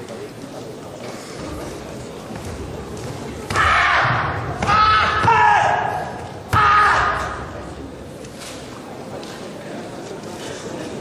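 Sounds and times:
loud held shout: 3.5 - 7.4.

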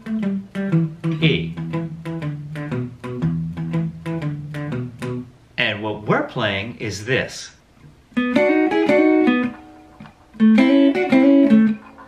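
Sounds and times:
electric guitar blues bass line: 0.0 - 5.4, 8.2 - 12.0.

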